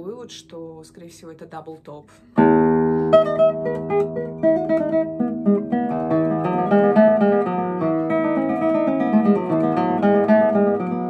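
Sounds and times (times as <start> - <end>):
fingerstyle classical guitar: 2.4 - 11.0.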